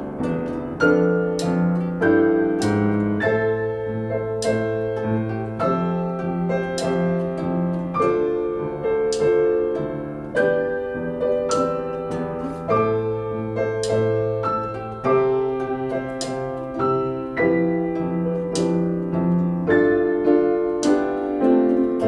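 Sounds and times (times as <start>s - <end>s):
guitar chords: 0.0s - 22.0s
piano chords: 0.0s - 22.0s.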